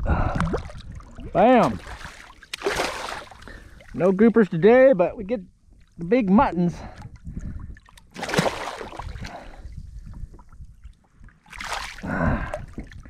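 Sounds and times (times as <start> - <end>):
fish thrashing and splashing: 0.5 - 4.0, 7.7 - 9.5, 11.4 - 12.0.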